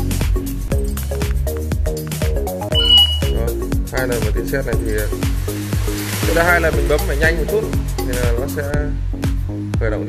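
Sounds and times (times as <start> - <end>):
background music with steady beat: 0.0 - 10.0
short high beep: 2.8 - 3.4.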